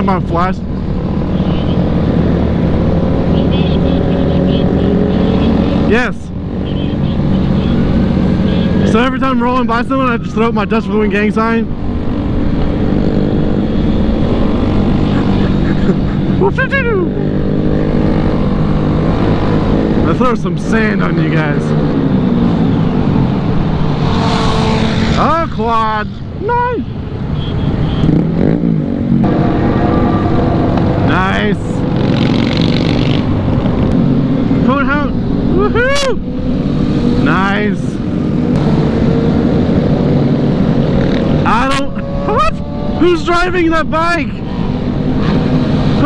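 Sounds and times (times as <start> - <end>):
motorcycle engine droning: 27.3 - 37.3, 37.9 - 46.0.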